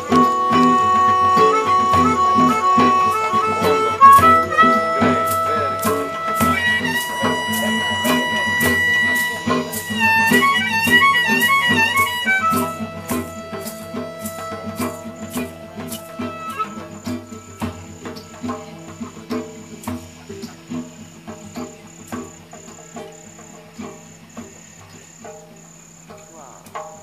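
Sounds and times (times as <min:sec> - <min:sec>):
harmonica warbling: 0:00.0 - 0:19.7
acoustic guitar picking: 0:00.0 - 0:27.0
cricket chirping: 0:00.0 - 0:27.0.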